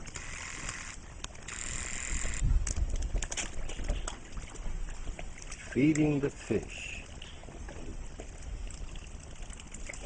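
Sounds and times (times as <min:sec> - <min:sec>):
birds dabbling in water: 0:00.0 - 0:10.0.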